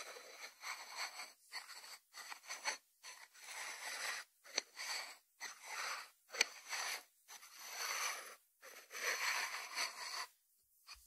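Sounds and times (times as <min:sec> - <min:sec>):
ceramic dish scraping on wood: 0:00.0 - 0:10.3.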